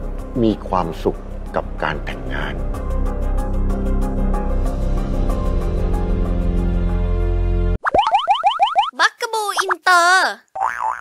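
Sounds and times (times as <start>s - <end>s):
drama background music: 0.0s - 7.8s
wobbly warbling sounds: 7.8s - 9.8s.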